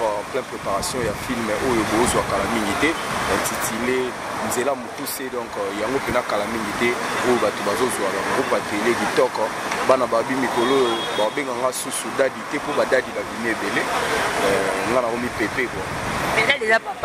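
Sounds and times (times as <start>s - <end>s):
man talking into a microphone: 0.0s - 16.0s.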